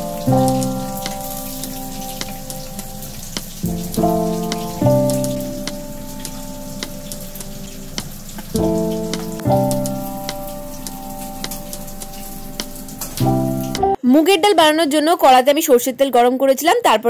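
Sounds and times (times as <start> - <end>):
fritters sizzling in oil: 0.0 - 13.7
oil popping: 0.0 - 13.9
background music of held chords: 0.0 - 14.0.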